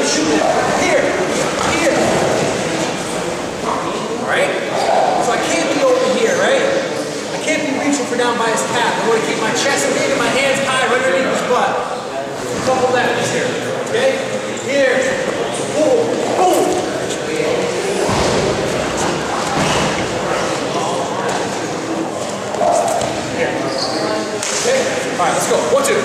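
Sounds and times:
people talking in echoing room: 0.0 - 26.0.

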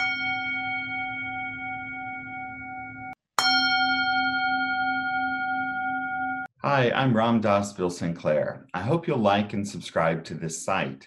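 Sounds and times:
struck bell ringing: 0.0 - 6.5.

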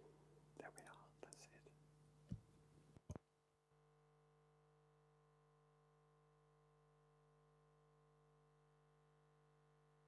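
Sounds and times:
low electrical hum: 0.0 - 10.0
person whispering: 0.6 - 1.8.

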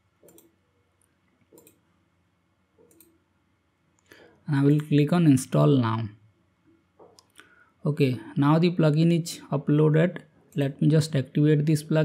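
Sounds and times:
faint mouse clicks: 0.2 - 1.9, 2.8 - 3.2.

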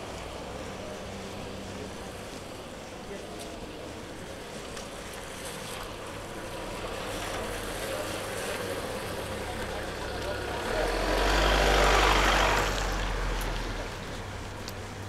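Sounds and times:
tyres hissing on wet asphalt: 0.0 - 15.0
car driving past: 6.5 - 14.0.

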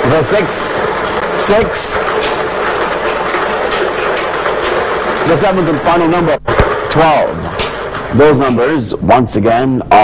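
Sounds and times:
balls tumbling and clicking: 0.0 - 8.8.

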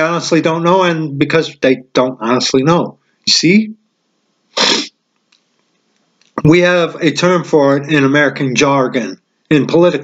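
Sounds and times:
man's sharp breath burst: 4.6 - 5.0.

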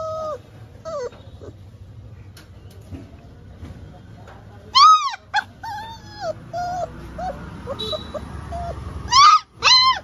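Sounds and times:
puppy yelping: 0.0 - 1.6, 4.7 - 10.0
puppy whimpering: 0.0 - 1.7, 4.7 - 10.0.

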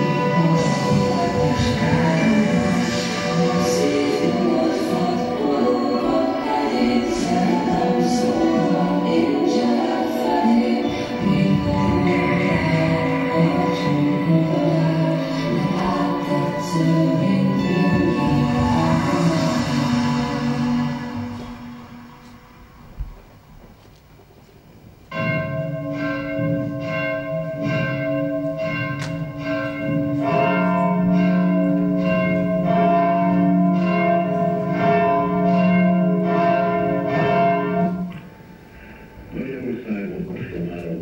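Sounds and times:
church bells ringing: 0.0 - 22.7, 25.1 - 40.9
choral music: 0.0 - 24.0, 25.1 - 41.0.

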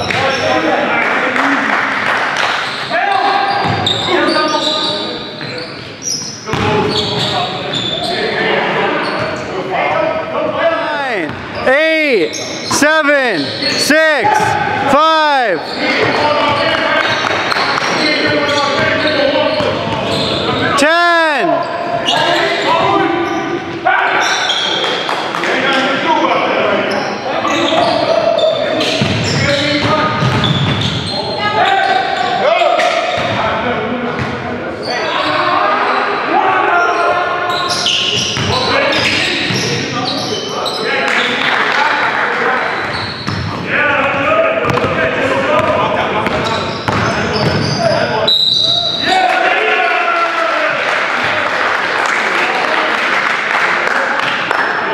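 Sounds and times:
players' voices echoing: 0.0 - 54.9
ball bouncing on hardwood court: 6.5 - 7.0, 29.8 - 30.9, 44.6 - 45.0, 45.6 - 47.7.

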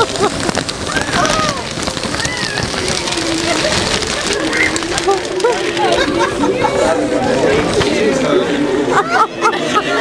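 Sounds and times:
rustling and crackling material: 0.0 - 8.2
faint voices: 0.0 - 10.0.

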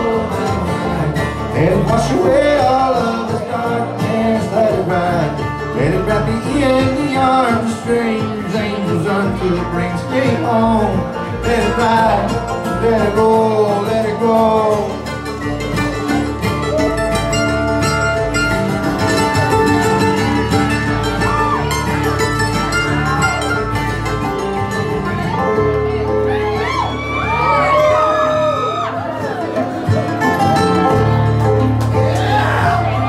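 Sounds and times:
bluegrass band playing: 0.0 - 33.0
sliding bending guitar notes: 0.0 - 33.0.

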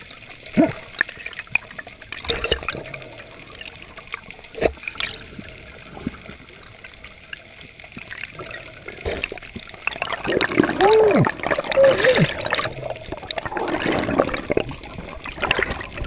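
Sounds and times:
bubbling: 0.0 - 16.0
muffled underwater water noise: 0.0 - 16.0.

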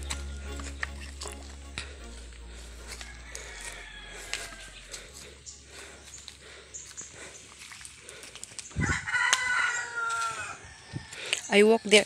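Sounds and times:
rooster crowing: 1.9 - 6.8, 8.7 - 11.4.

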